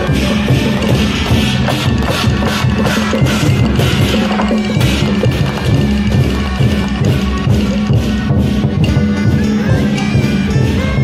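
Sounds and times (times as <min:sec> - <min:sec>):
cymbals crashing: 0:00.0 - 0:11.0
large drums beating: 0:00.0 - 0:11.0.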